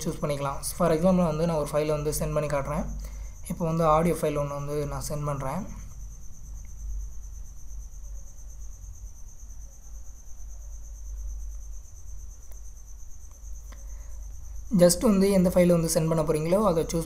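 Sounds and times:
person speaking: 0.0s - 5.9s, 14.7s - 17.0s.

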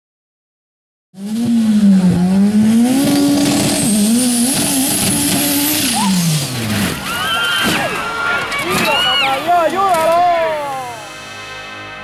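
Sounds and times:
buggy engine revving: 1.2s - 8.8s
buggy rolling over: 1.4s - 10.2s.

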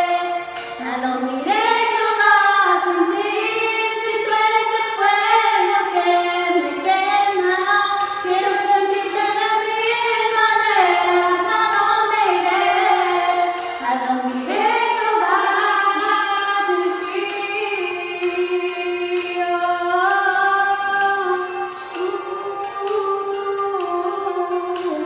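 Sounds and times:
girls singing together: 0.0s - 25.0s.

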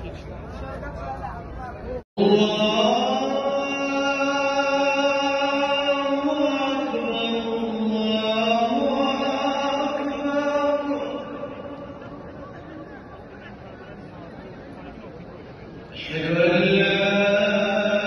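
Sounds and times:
person chanting a recitation: 2.2s - 12.0s, 16.0s - 18.0s.

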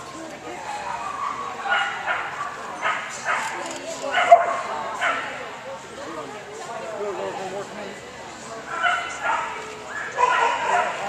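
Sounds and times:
dog barking and yipping: 8.8s - 11.0s.

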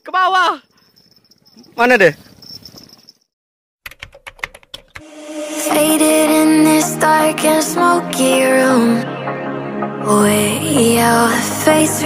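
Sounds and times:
electronic music: 5.0s - 12.0s.

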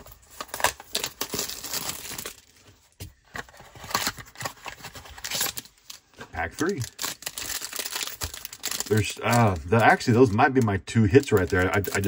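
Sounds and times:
plastic shrink wrap crinkling: 0.0s - 3.0s, 3.8s - 12.0s.

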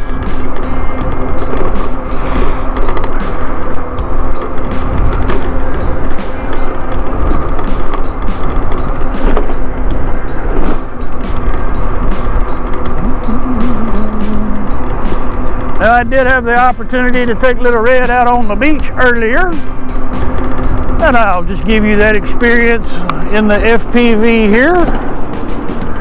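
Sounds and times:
background music: 0.0s - 26.0s
scooter road noise: 0.0s - 26.0s
wind rumble: 0.0s - 26.0s.

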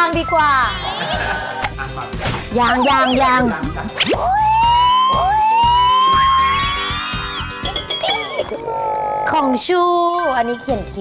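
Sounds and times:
background music: 0.0s - 11.0s
whistle-like tone gliding upward: 4.4s - 8.4s.

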